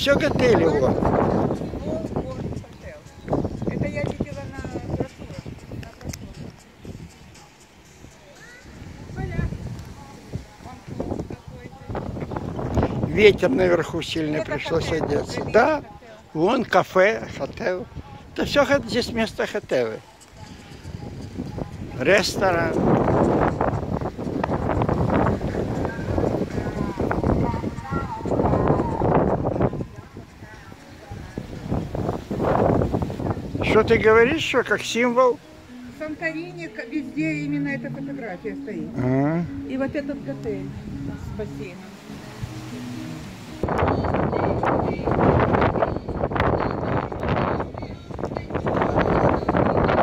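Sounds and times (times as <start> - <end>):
wind buffeting microphone: 0.0 - 19.5, 20.2 - 34.8, 35.4 - 50.0.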